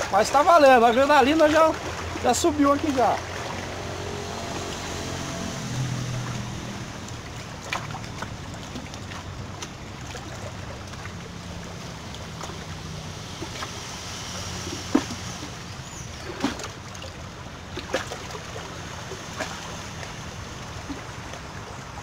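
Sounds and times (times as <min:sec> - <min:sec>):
sea waves on rocks: 0:00.0 - 0:22.0
wind: 0:00.0 - 0:22.0.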